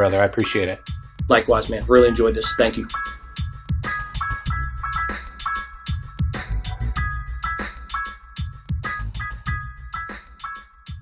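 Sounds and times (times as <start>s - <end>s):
music with steady drum beat: 0.0s - 11.0s.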